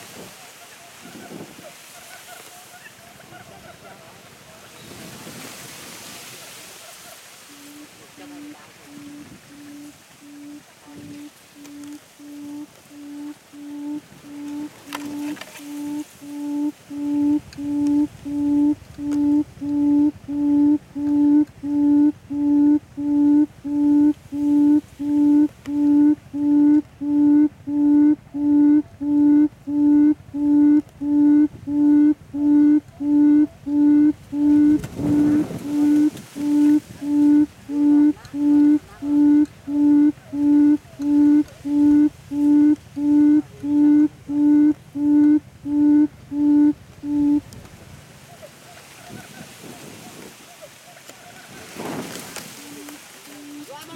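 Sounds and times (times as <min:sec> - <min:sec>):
bird booming call: 0:08.9 - 0:47.4.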